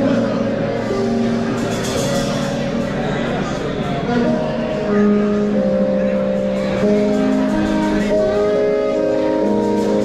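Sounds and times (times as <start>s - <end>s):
drums: 0.0s - 10.0s
funk band playing: 0.0s - 10.0s.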